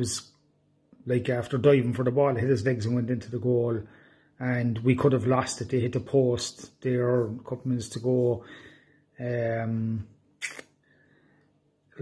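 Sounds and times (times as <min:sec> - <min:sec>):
brief hissy click: 0:10.4 - 0:10.7.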